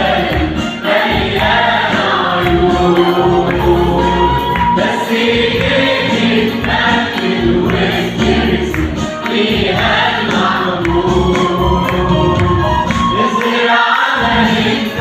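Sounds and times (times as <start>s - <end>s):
choir singing a hymn: 0.0s - 15.0s
instrumental backing with beat: 0.0s - 15.0s.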